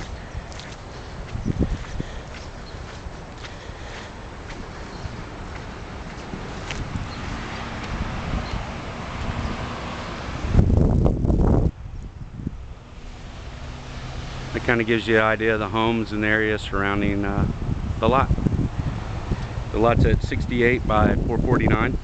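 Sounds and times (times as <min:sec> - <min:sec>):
heavy wind gust booming: 0:00.0 - 0:22.0
wind blowing over microphone: 0:00.0 - 0:22.0.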